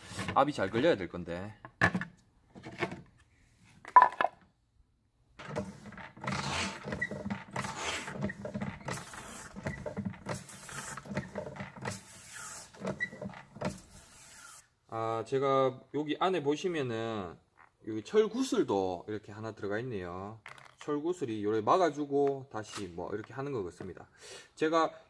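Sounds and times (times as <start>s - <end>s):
rubbing and clattering: 5.4s - 14.6s.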